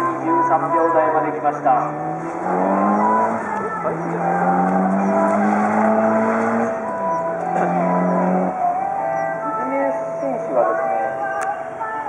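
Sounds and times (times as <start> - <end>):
car engine at high revs: 0.0 - 11.4.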